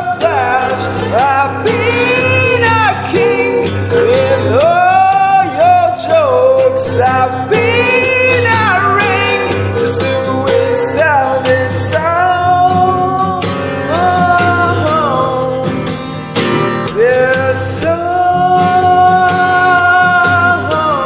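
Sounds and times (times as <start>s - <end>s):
person singing long sliding notes: 0.0s - 15.6s, 17.0s - 21.0s
guitar accompaniment: 0.0s - 21.0s.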